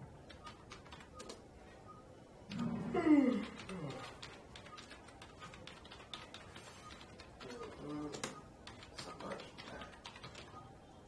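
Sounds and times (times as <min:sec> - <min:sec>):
man yawning: 0:02.8 - 0:03.8.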